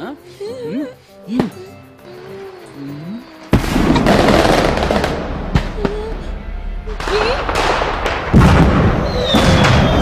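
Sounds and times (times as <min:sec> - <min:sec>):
fireworks crackling: 0:03.4 - 0:06.3, 0:06.9 - 0:10.0
fireworks bangs: 0:03.5 - 0:06.3, 0:06.9 - 0:10.0.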